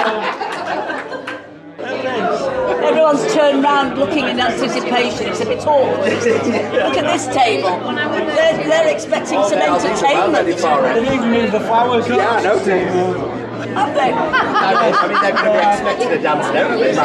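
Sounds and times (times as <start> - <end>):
guests chatting: 0.0 - 17.0.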